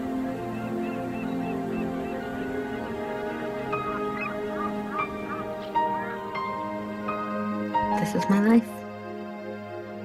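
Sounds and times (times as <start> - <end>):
gulls crying: 0.0 - 7.9
soft music of long held notes: 0.0 - 10.0.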